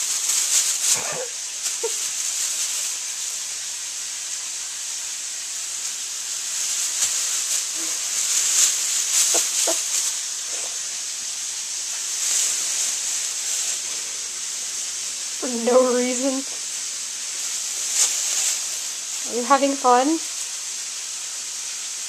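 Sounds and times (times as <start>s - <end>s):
plastic bag crinkling: 0.0s - 3.8s, 5.3s - 20.6s
steaks sizzling in a pan: 0.0s - 22.0s.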